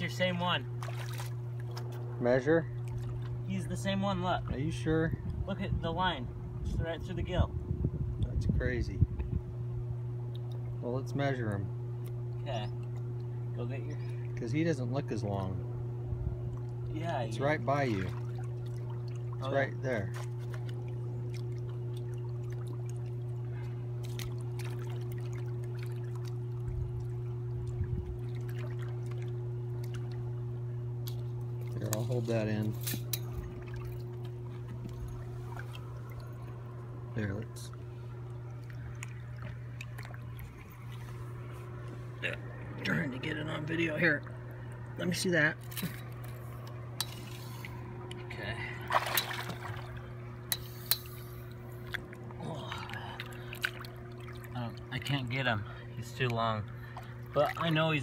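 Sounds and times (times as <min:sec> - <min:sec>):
river water lapping and sloshing: 0:00.0 - 0:05.5, 0:10.2 - 0:11.3, 0:11.9 - 0:58.0
steady low hum: 0:00.0 - 0:58.0
river water lapping on rocks: 0:00.7 - 0:03.5, 0:20.1 - 0:30.3, 0:37.8 - 0:42.2, 0:48.8 - 0:55.4
small knocks and splashes: 0:00.8 - 0:02.1, 0:02.7 - 0:03.5, 0:17.8 - 0:30.3, 0:31.0 - 0:36.9, 0:37.7 - 0:42.0, 0:45.6 - 0:55.4, 0:56.2 - 0:58.0.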